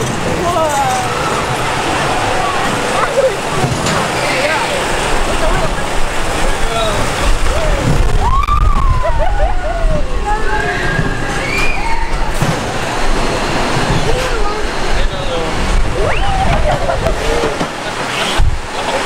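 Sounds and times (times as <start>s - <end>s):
roller coaster car on steel track: 0.0s - 19.0s
wind rushing over microphone: 1.1s - 18.8s.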